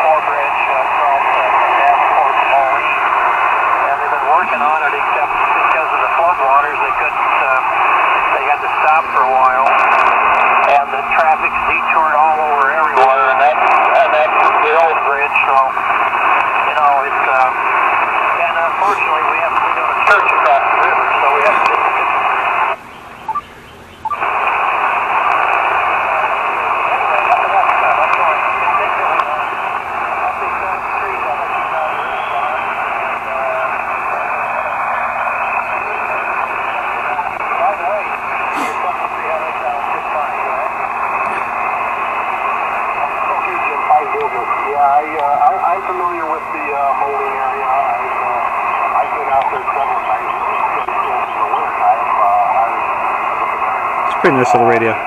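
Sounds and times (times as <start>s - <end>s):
faint garbled radio voices: 0.0s - 55.0s
radio static hiss: 0.0s - 55.0s.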